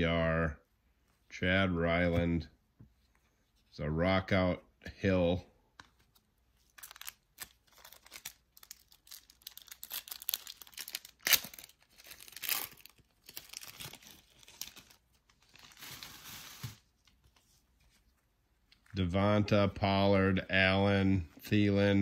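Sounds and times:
plastic wrapper crinkling: 6.6 - 16.8
plastic wrapper tearing: 6.7 - 16.8.

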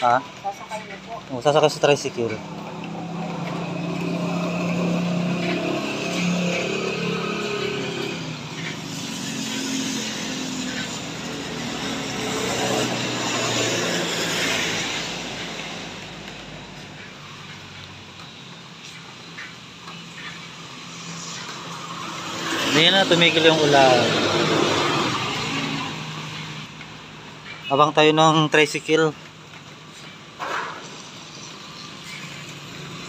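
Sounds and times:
engine humming: 0.0 - 27.6.

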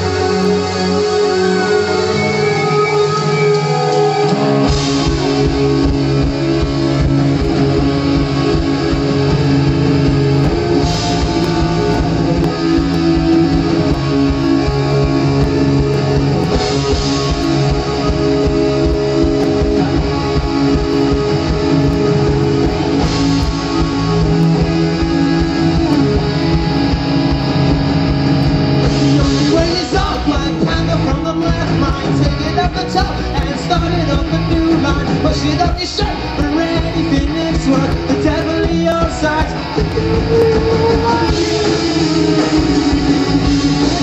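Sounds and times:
drums keeping a steady beat: 0.0 - 44.0
strummed electric guitar: 0.0 - 44.0.

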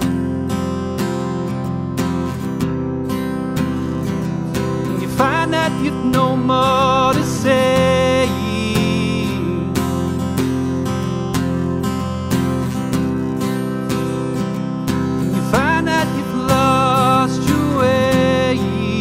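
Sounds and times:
acoustic guitar strumming: 0.0 - 19.0
man singing: 4.9 - 10.2, 15.3 - 19.0.

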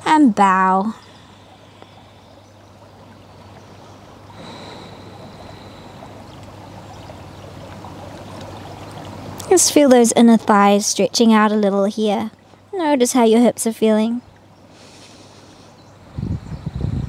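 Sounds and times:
stream water running: 0.0 - 16.6.

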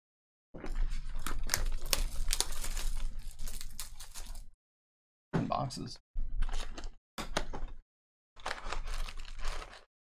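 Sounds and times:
packaging crinkling and tearing: 1.0 - 4.5, 8.4 - 9.9.

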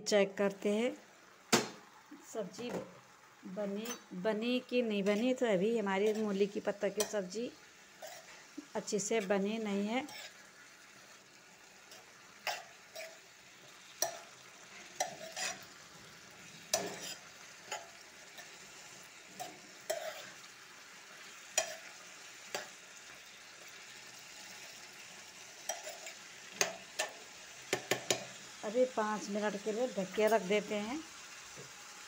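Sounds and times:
vegetables sizzling softly: 0.0 - 32.0
spoon scraping metal pan: 3.7 - 4.1, 5.0 - 5.4, 6.0 - 7.4, 8.0 - 10.5, 11.8 - 13.2, 14.0 - 15.8, 16.6 - 18.6, 19.3 - 20.4, 21.3 - 22.8, 25.6 - 28.4.

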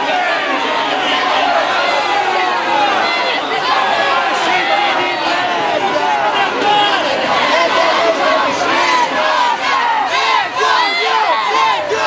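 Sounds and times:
crowd shouting and yelling: 0.0 - 12.0.

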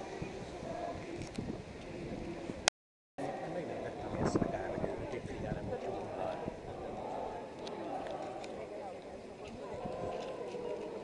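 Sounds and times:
murmur of many voices: 0.0 - 2.6, 3.2 - 11.0
crowd footsteps on asphalt: 3.6 - 11.0.

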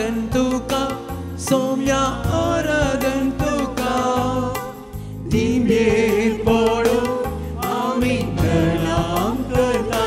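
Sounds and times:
keyboard accompaniment: 0.0 - 10.0
person singing a hymn: 5.2 - 10.0.

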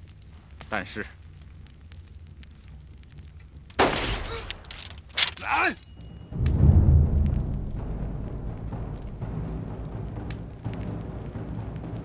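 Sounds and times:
pistol shot: 3.8 - 4.6
dramatic music: 6.1 - 12.0
low drum hits: 6.4 - 10.6.

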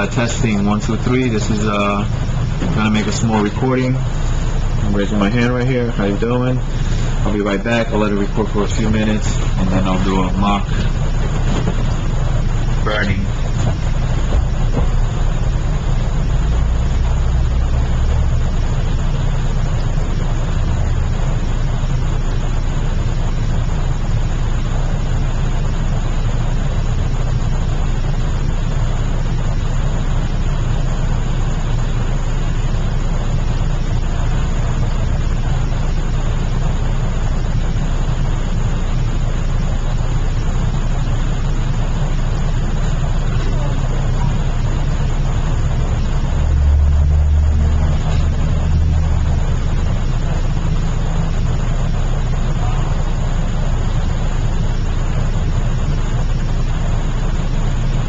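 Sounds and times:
low hum: 0.0 - 58.0
deeper tone: 42.9 - 58.0.

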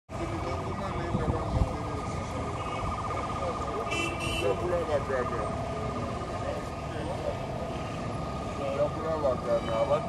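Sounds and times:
street noise: 0.1 - 10.0
police siren wailing: 0.2 - 10.0.

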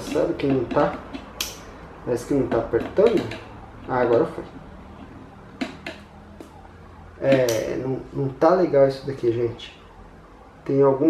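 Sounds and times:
screwdriver clicks: 0.7 - 1.6.

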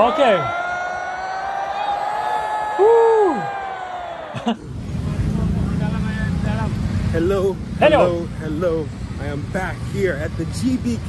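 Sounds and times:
low rumble of road traffic: 3.2 - 11.0
voices talking in background: 4.9 - 11.0.

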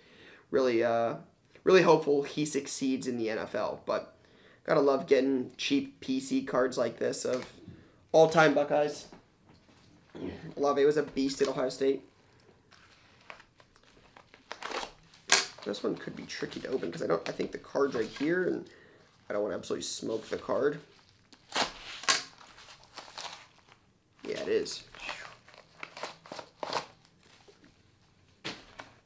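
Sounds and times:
plastic mailer crinkling: 12.8 - 18.7, 20.1 - 27.4.

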